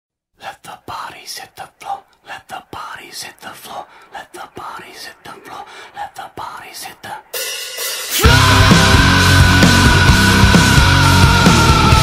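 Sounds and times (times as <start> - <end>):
whispered singing: 0.4 - 7.4.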